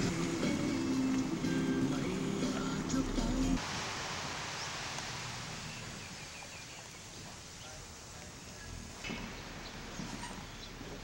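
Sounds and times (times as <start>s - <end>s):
music: 0.0s - 3.6s
sea surf: 0.0s - 6.2s
wind: 0.0s - 11.0s.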